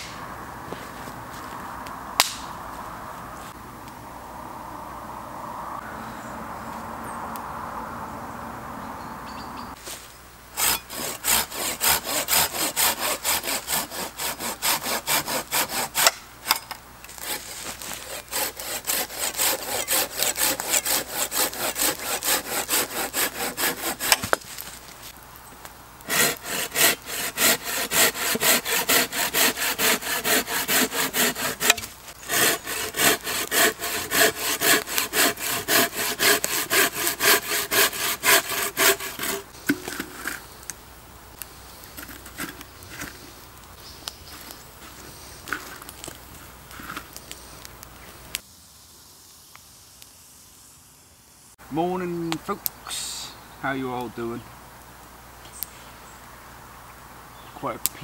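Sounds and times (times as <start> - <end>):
hand saw cutting log: 10.6 - 24.6, 26.1 - 40.4.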